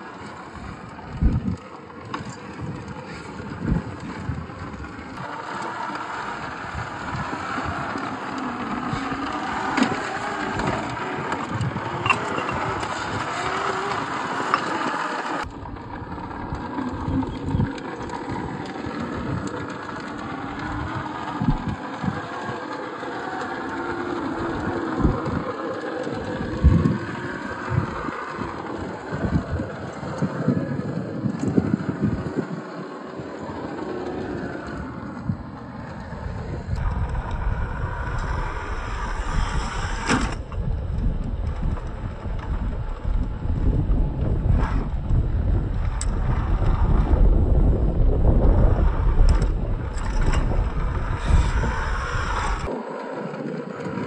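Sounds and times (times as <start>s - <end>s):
electric motor whirring: 0.0s - 52.8s.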